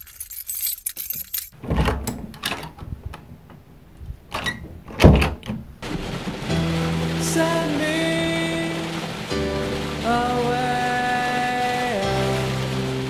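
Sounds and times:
light clicks and rattles: 0.0s - 5.8s
dull thumps and knocks: 1.6s - 7.1s.

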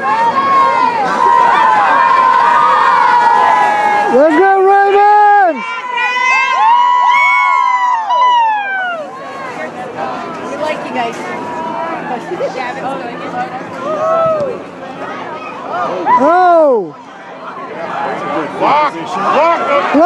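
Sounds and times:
crowd cheering and yelling: 0.0s - 20.0s
scattered crowd chatter: 0.0s - 20.0s.

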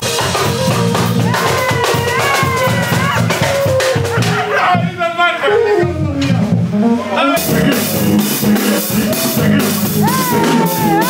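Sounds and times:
bass guitar: 0.0s - 11.0s
drum kit: 0.0s - 11.0s
sliding melody line: 0.4s - 11.0s.

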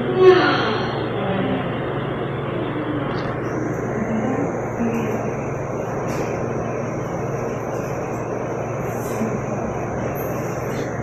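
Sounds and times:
low hum: 0.0s - 11.0s
mechanical drone with rushing noise: 0.0s - 11.0s.

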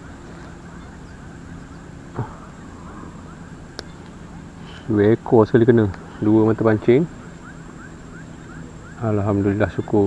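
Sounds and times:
faint rapid chirping: 0.0s - 10.0s.

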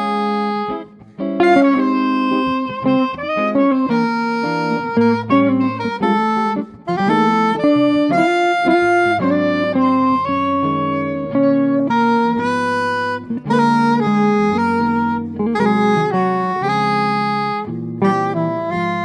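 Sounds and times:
electric guitar chords: 0.0s - 19.0s
soprano saxophone jazz melody: 0.0s - 19.0s.

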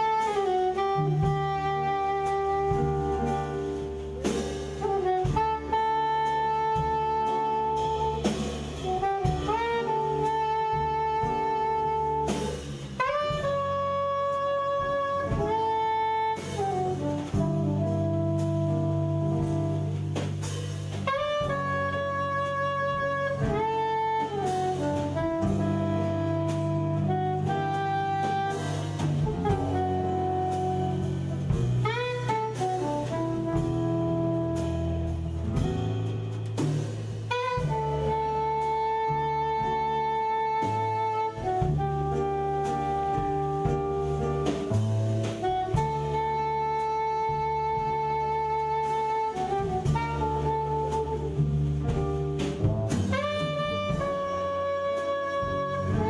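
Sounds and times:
double bass: 0.0s - 56.0s
drum kit: 0.0s - 56.0s
soprano saxophone jazz melody: 0.0s - 56.0s.

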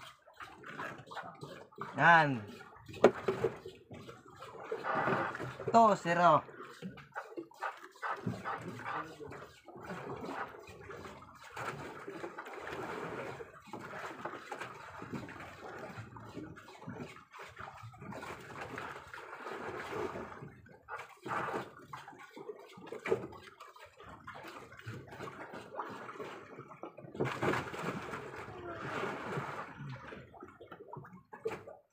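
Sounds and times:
water lapping against boat hull: 0.0s - 31.9s.

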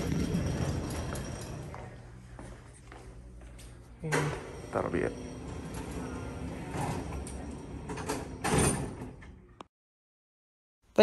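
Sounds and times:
elevator doors sliding closed: 0.0s - 1.9s, 4.1s - 9.4s.

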